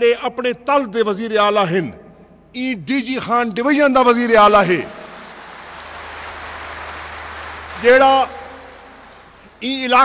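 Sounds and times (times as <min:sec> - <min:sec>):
audience applauding: 0:04.8 - 0:10.0.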